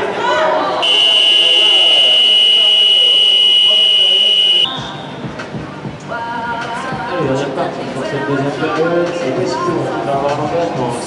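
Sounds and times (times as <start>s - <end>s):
hall noise with voices: 0.0s - 11.0s
high-pitched game buzzer: 0.8s - 4.7s.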